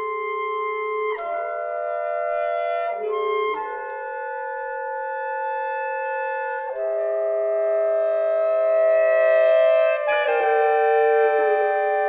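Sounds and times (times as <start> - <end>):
saxophone quartet chords: 0.0 - 12.0.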